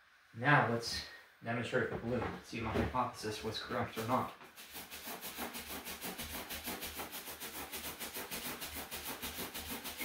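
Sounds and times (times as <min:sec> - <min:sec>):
balloon rubbing against hair: 0:03.4 - 0:10.0.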